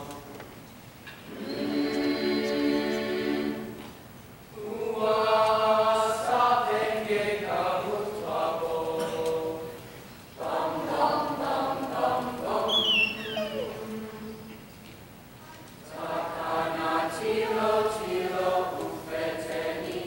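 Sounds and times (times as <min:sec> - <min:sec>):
mixed choir singing: 0:01.2 - 0:14.6, 0:15.8 - 0:20.0
high falling vocal slide: 0:12.5 - 0:14.5.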